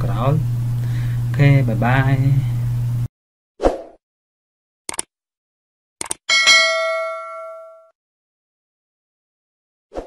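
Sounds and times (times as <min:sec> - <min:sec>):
bright bell ding: 0:06.3 - 0:07.9.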